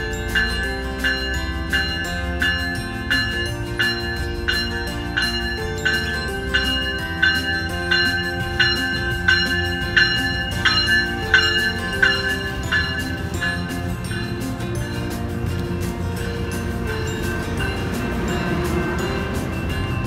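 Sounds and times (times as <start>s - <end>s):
low train rumble: 0.0s - 20.0s
warning bell ringing: 0.0s - 20.0s.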